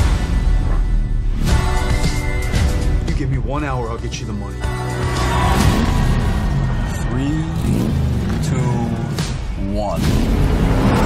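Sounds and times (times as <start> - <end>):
car engines revving: 4.8 - 11.0.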